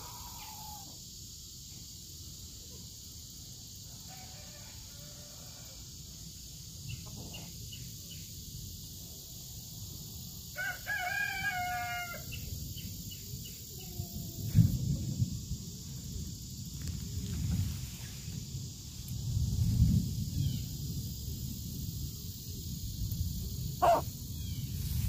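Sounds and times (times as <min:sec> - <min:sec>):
rooster crowing: 0:00.0 - 0:01.0, 0:03.9 - 0:06.0, 0:10.6 - 0:12.4, 0:23.8 - 0:24.0.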